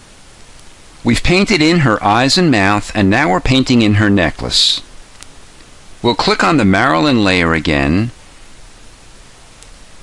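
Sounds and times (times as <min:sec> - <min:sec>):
steady background hiss: 0:00.0 - 0:10.0
person narrating: 0:01.0 - 0:04.9, 0:06.0 - 0:08.2.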